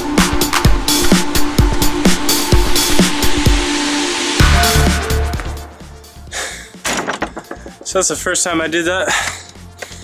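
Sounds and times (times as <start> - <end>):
electronic dance music: 0.0 - 6.0.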